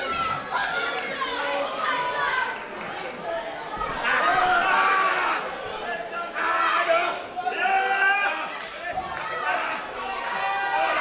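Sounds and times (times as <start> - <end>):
children's high voices: 0.0 - 11.0
crowd shouting and chattering: 0.0 - 11.0.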